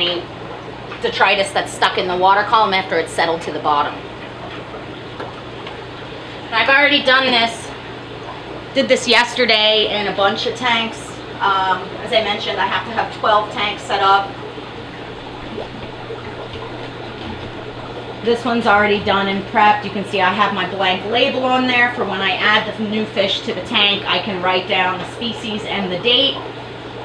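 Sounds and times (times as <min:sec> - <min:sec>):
aquarium water trickling: 0:00.0 - 0:27.0
low steady hum: 0:00.0 - 0:27.0.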